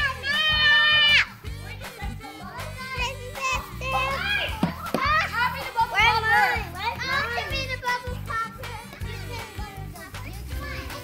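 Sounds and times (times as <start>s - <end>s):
background music with bass line: 0.0s - 11.0s
children chattering and calling out: 0.0s - 11.0s.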